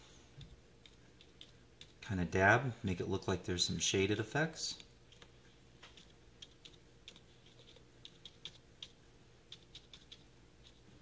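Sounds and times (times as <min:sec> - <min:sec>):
low steady hum: 0:00.0 - 0:11.0
brush dabbing paint on paper: 0:00.4 - 0:02.0, 0:05.1 - 0:11.0.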